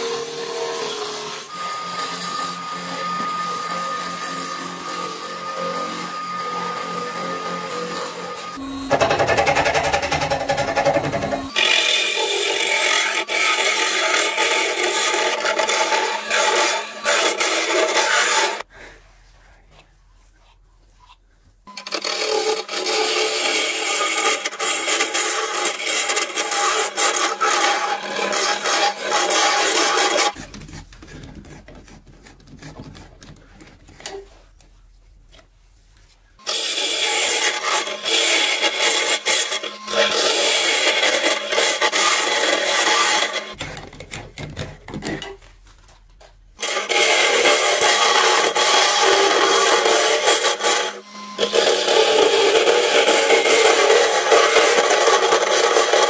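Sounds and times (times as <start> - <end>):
wood lathe running: 0.0 - 18.6, 21.7 - 30.4, 36.5 - 43.6, 46.6 - 56.0
hollowing bar scraping wood: 0.0 - 18.7, 21.9 - 34.4, 36.4 - 45.4, 46.6 - 56.0
gouge shaving wood: 22.2 - 34.1, 36.5 - 43.6, 46.6 - 56.0.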